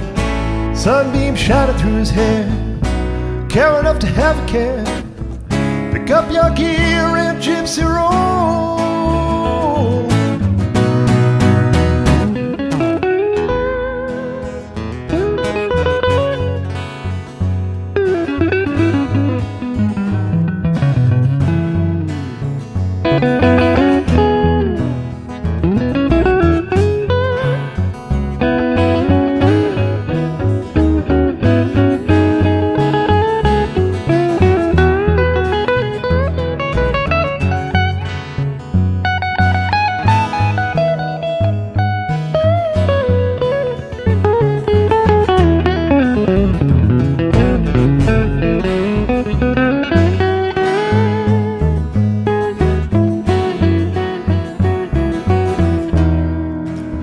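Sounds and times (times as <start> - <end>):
electric guitar lead with bent notes: 0.0 - 57.0
plucked double bass: 0.0 - 57.0
strummed acoustic guitar: 0.0 - 57.0.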